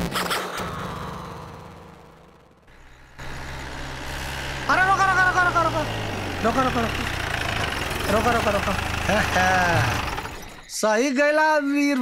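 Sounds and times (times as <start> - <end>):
vehicle engine driving: 0.6 - 10.7.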